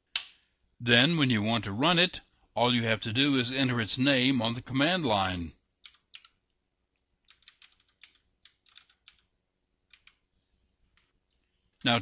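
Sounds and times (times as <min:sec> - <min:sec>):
computer keyboard keystrokes: 0:05.8 - 0:06.4, 0:07.2 - 0:09.3, 0:09.9 - 0:10.2.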